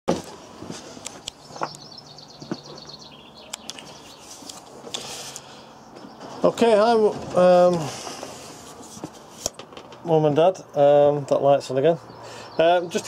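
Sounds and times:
bird trilling: 1.4 - 4.4.

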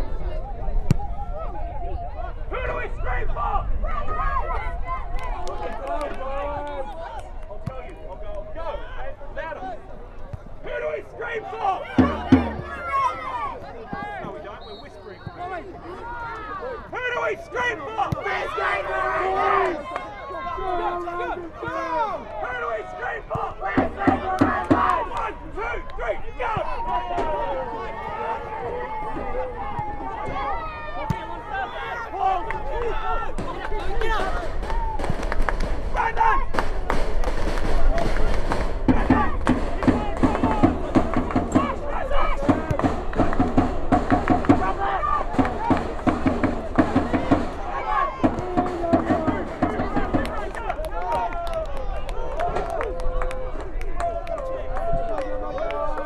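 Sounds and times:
people shouting and calling: 10.6 - 35.1, 35.9 - 36.6, 37.9 - 56.0.

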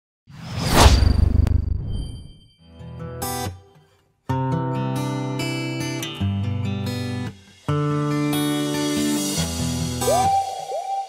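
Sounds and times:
whoosh sound effect: 0.3 - 2.4
low rumble: 0.5 - 2.4.

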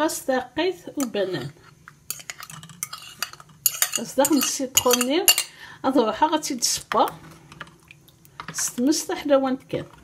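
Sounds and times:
fork scraping ceramic plate: 1.1 - 5.1.

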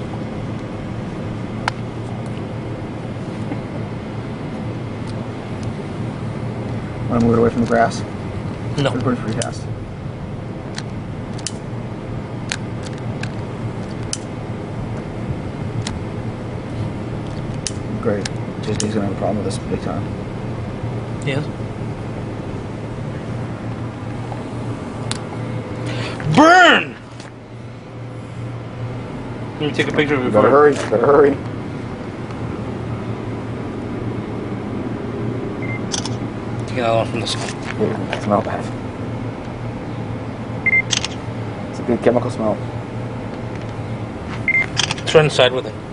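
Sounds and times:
steady low hum: 0.0 - 45.9
camera shutter click: 35.9 - 36.2, 40.9 - 41.2, 44.7 - 45.0.

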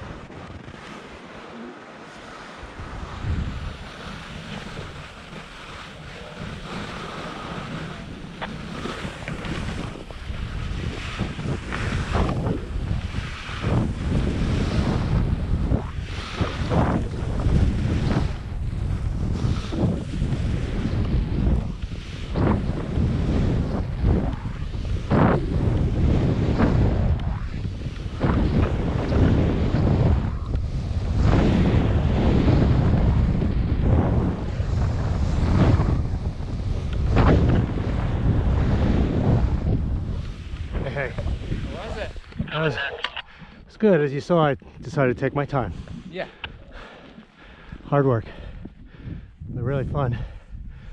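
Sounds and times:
skis scraping over snow: 0.0 - 42.9
wind buffeting microphone: 0.0 - 50.9.

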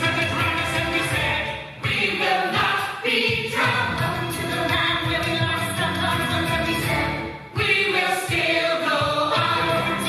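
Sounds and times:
group of teenagers singing: 0.0 - 10.0.

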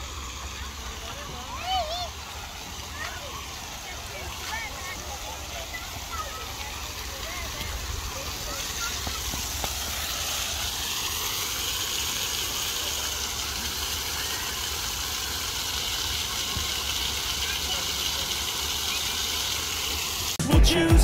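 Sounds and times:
fountain jets spraying water: 0.0 - 20.4
water splattering on wet paving: 2.9 - 20.4.

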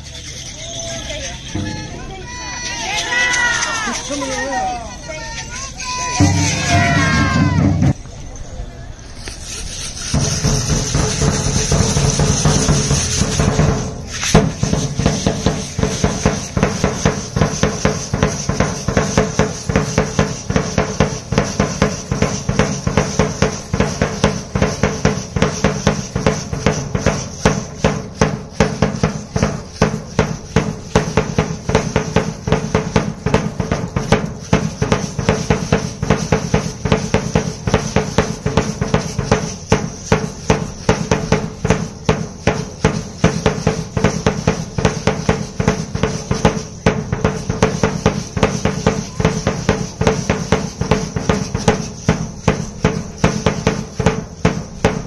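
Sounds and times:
marching drum beaten with sticks: 1.5 - 3.9, 5.9 - 8.0, 10.0 - 55.0.

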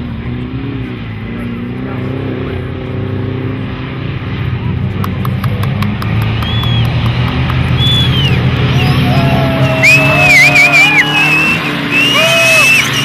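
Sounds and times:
race car engines droning: 0.0 - 13.0.

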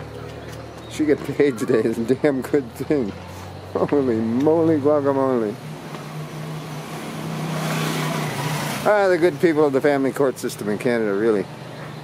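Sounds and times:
car approaching: 0.0 - 12.0.

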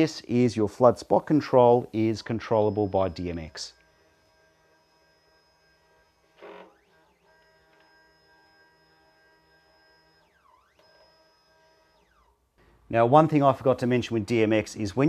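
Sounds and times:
faint sliding tones: 1.1 - 12.9.

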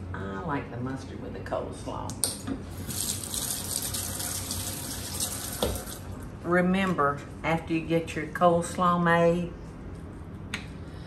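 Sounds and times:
hands rinsed under water: 2.8 - 6.0
faucet running into metal sink: 2.8 - 6.1.

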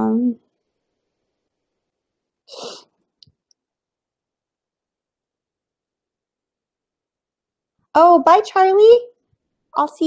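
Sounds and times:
person exhaling: 2.5 - 2.9.

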